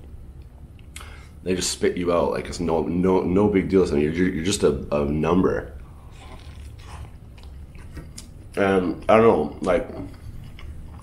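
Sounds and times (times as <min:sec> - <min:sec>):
person chewing food: 0:05.8 - 0:08.6, 0:10.0 - 0:11.0.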